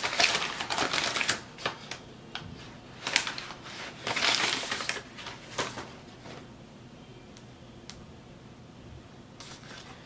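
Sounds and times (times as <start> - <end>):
paper bag crinkling: 0.0 - 2.0, 3.0 - 5.9.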